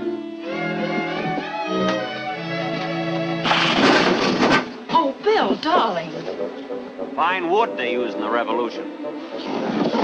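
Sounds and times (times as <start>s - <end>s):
bowed strings film score: 0.0s - 10.0s
loud crash against wooden door: 3.4s - 4.7s.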